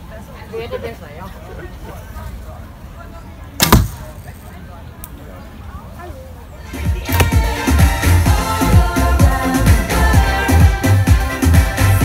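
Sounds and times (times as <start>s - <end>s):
bow string snap: 7.1s - 7.4s.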